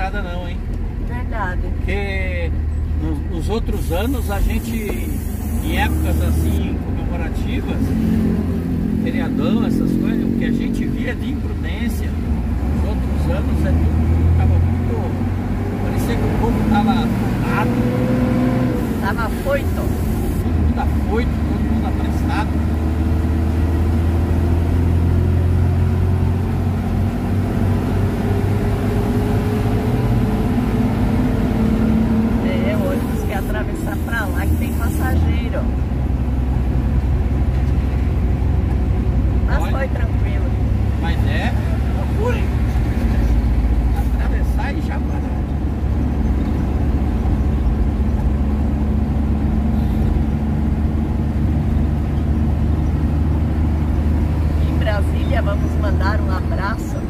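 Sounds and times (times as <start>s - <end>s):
road noise: 0.0s - 57.0s
truck engine drone: 0.0s - 57.0s.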